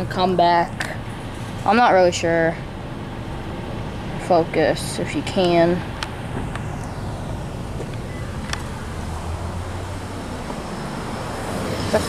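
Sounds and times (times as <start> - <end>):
car engine rumble: 0.0 - 12.0
road traffic: 0.0 - 12.0.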